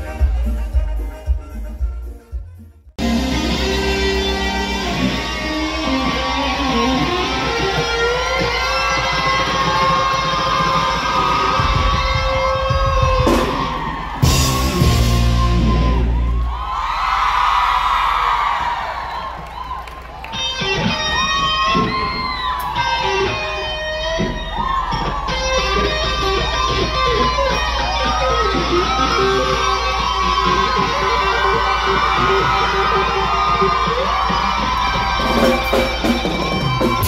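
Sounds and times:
steady bass: 0.0 - 8.2, 11.8 - 16.5
electric guitar solo with bends: 3.0 - 16.5, 20.2 - 37.0
crowd cheering: 3.0 - 37.0.

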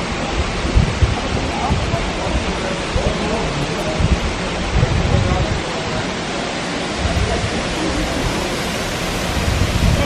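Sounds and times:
waterfall rushing: 0.0 - 10.0
wind on microphone: 0.0 - 10.0.

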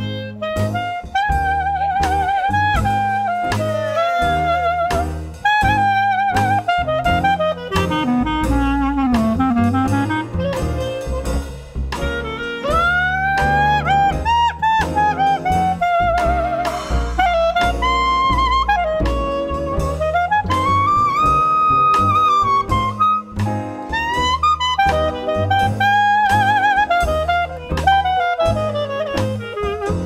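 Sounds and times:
clarinet solo: 0.0 - 30.0
jazz rhythm section: 0.0 - 30.0.

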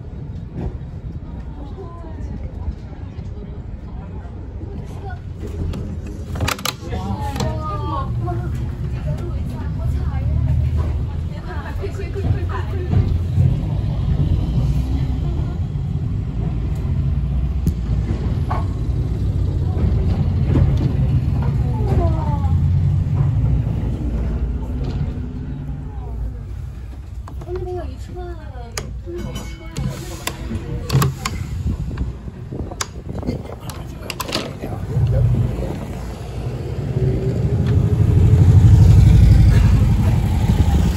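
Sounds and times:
electric tram rumbling on track: 0.0 - 40.9
scattered voices: 0.2 - 40.9.

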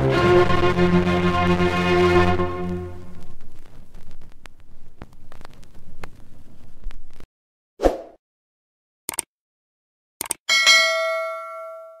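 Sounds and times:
bright bell ding: 10.5 - 12.0.

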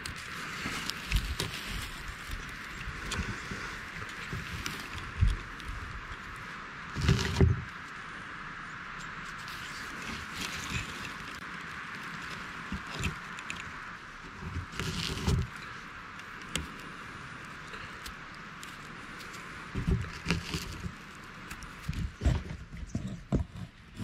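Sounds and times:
steady outdoor hiss: 0.0 - 24.0.

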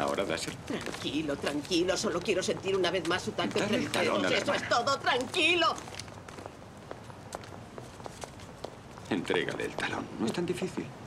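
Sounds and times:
footsteps on pavement: 0.0 - 10.0
low street hum: 0.0 - 11.0.

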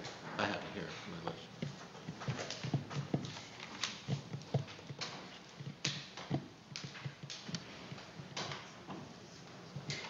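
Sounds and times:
light knocks and clacks: 0.0 - 10.0.

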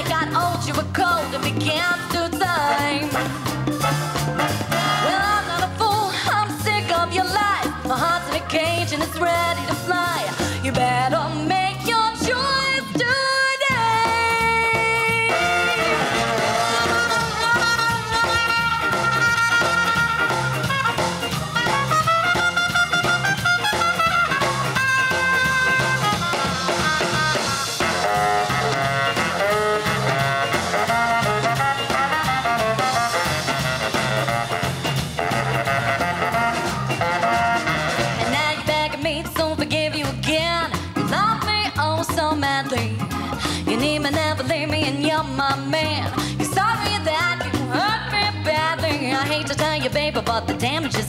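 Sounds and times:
drums in swinging groove: 0.0 - 51.0
horn section: 2.6 - 5.7, 15.0 - 38.6.

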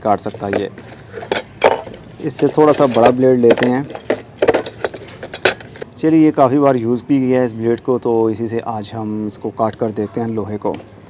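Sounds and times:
metal blades clinking: 0.2 - 5.8.

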